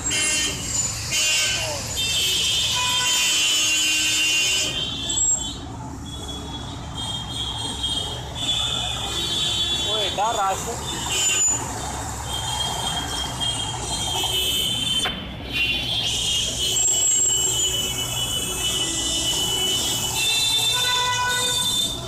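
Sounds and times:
motorcycle and scooter engines: 0.0 - 22.0.

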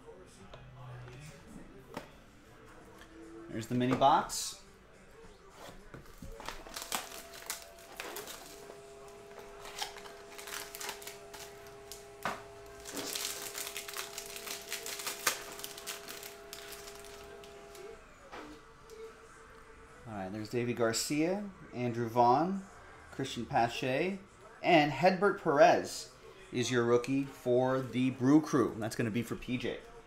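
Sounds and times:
foil pack tearing and crinkling: 6.3 - 17.9.

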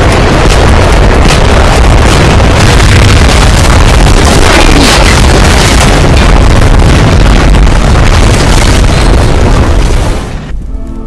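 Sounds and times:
battle explosions rumbling: 0.0 - 10.7
music soundtrack: 10.5 - 11.0.

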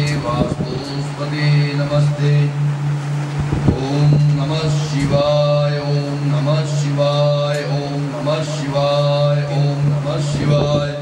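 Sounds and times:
man chanting: 0.0 - 11.0
steady low drone: 0.0 - 11.0.

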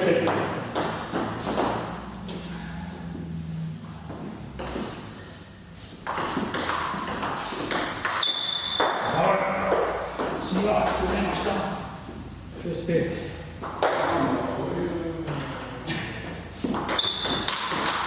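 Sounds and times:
brief high squeak: 8.2 - 8.8.

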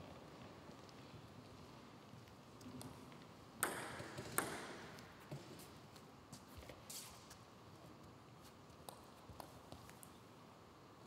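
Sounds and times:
table tennis ball bouncing: 3.6 - 5.0.

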